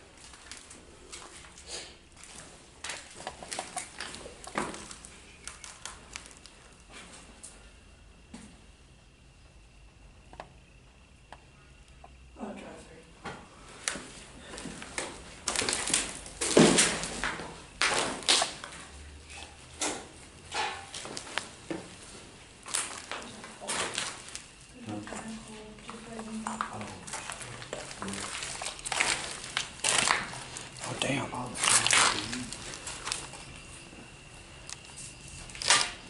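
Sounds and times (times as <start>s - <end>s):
footsteps crunching over rubble: 0.0s - 7.4s, 13.9s - 35.8s.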